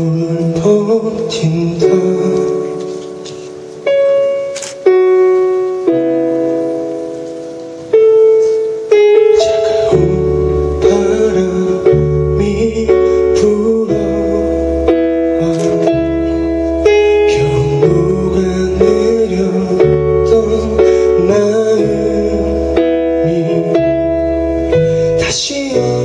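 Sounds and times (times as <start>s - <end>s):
electric keyboard chords: 0.0s - 26.0s.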